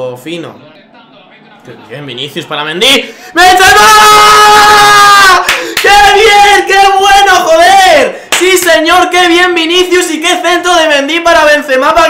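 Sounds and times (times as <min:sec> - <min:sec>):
man yelling in celebration: 0:03.4 - 0:12.0.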